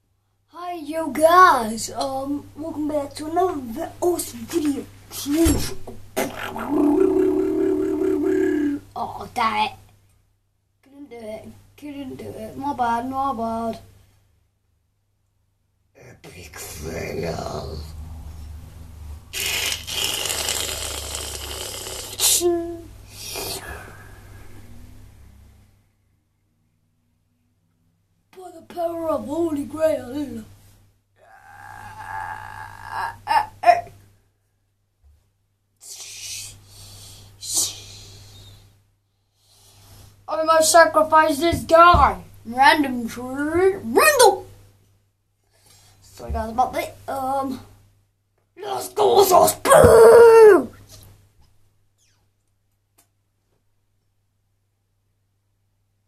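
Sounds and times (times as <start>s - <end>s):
child crying out loudly: 31.2s - 33.8s, 49.4s - 50.7s
child wailing: 31.2s - 33.8s, 48.7s - 50.8s.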